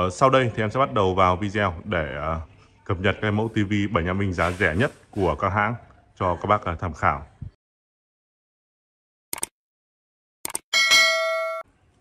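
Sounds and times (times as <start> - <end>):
bright bell ding: 10.7 - 11.7.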